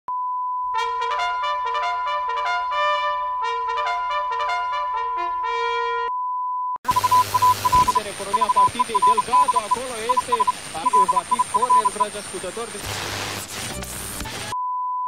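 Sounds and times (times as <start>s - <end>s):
brass melody: 0.7s - 6.1s
steady test tone: 6.9s - 12.1s
stuttering beeps: 6.9s - 12.1s
loud static hiss: 6.9s - 14.5s.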